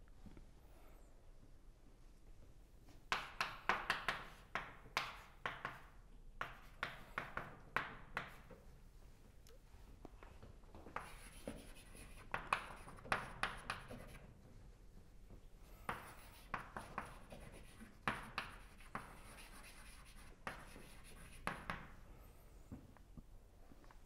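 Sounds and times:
chalk tapping on blackboard: 0:03.1 - 0:08.6, 0:10.9 - 0:14.3, 0:15.6 - 0:22.0
chalk scratching on blackboard: 0:10.9 - 0:14.3, 0:15.6 - 0:21.9.

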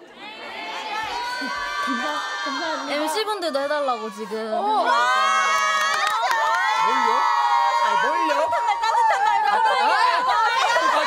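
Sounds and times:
women squealing and cheering: 0:00.8 - 0:11.0.

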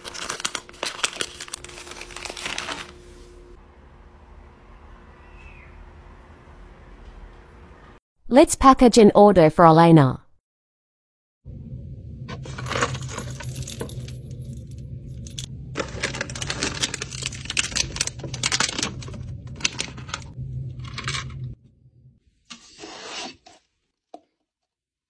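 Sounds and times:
low hum: 0:01.0 - 0:08.0, 0:11.4 - 0:22.5
trinkets clinking and rattling: 0:12.3 - 0:20.3.

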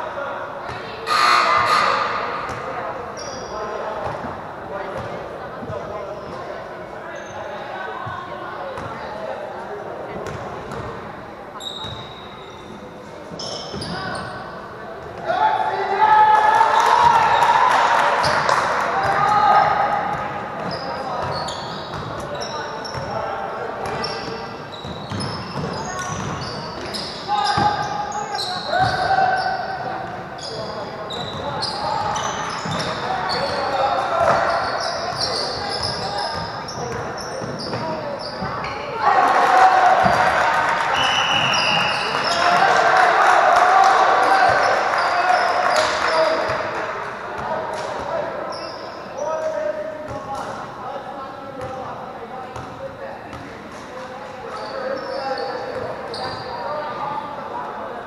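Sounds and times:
crowd voices: 0:00.0 - 0:58.0
shoe squeaks: 0:01.1 - 0:04.2, 0:07.1 - 0:07.6, 0:11.6 - 0:14.6, 0:20.6 - 0:23.2, 0:23.9 - 0:38.9, 0:41.0 - 0:42.6, 0:48.4 - 0:50.2, 0:54.4 - 0:57.2.

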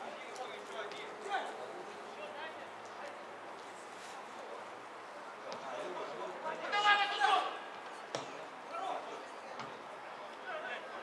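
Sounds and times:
players shouting: 0:06.6 - 0:07.7
football kicked with thump: 0:08.1 - 0:08.4.

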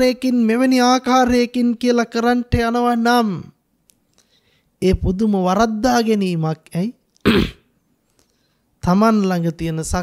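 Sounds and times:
man clearing throat: 0:07.3 - 0:07.7.

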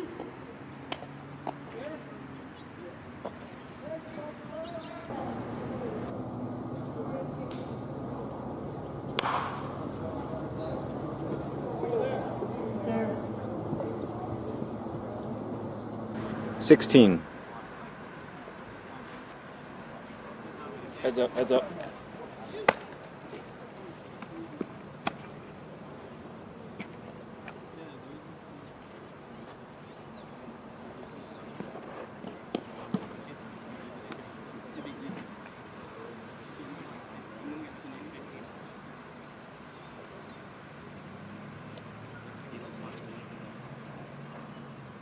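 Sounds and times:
distant voices calling out: 0:00.0 - 0:45.0
steady low hum: 0:05.1 - 0:21.0
baseball bat crack: 0:07.2 - 0:11.9, 0:22.6 - 0:23.0, 0:24.2 - 0:25.3
sharp knocks: 0:09.1 - 0:09.8.

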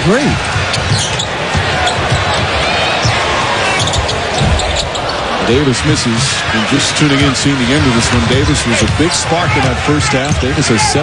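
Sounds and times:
crowd noise: 0:00.0 - 0:11.0
sneaker squeaks: 0:00.7 - 0:02.4, 0:03.0 - 0:05.2.

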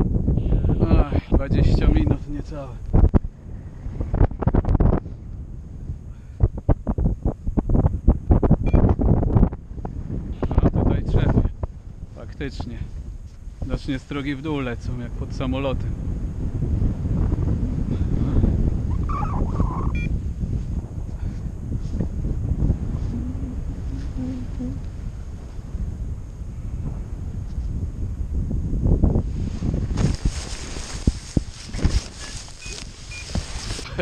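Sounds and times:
wind buffeting microphone: 0:00.0 - 0:34.0
short beep: 0:08.7 - 0:08.9, 0:19.9 - 0:20.1.

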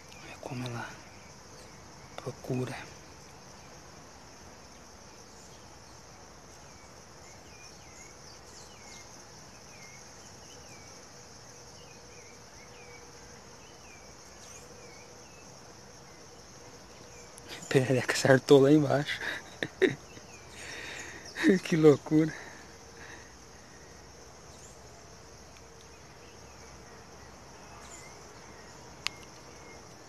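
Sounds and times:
high-pitched insect chorus: 0:00.0 - 0:30.0.

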